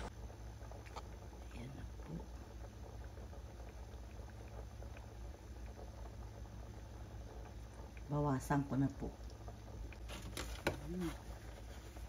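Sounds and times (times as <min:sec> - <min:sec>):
stew bubbling in metal pot: 0:00.0 - 0:12.0.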